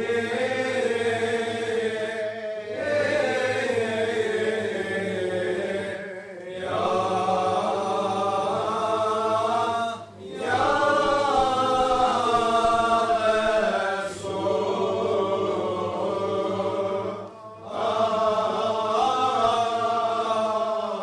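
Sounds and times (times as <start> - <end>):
group chanting melodically: 0.0 - 21.0.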